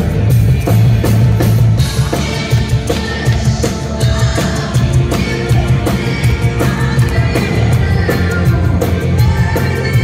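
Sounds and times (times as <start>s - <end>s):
drums steady quick beat: 0.0s - 10.0s
heavy bass: 0.0s - 10.0s
live new wave band: 0.0s - 10.0s.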